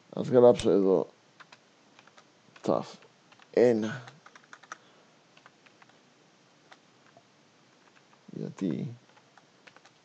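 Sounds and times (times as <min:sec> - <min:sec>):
keyboard keystrokes: 0:04.2 - 0:04.8, 0:09.1 - 0:10.0.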